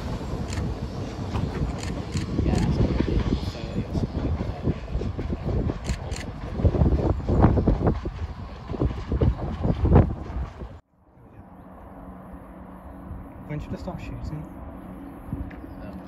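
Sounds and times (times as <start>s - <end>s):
wind buffeting microphone: 0.0s - 10.8s, 13.0s - 16.0s.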